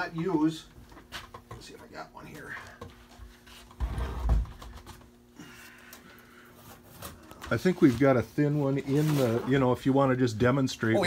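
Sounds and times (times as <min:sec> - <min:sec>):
scraping and shuffling: 0:06.4 - 0:10.0.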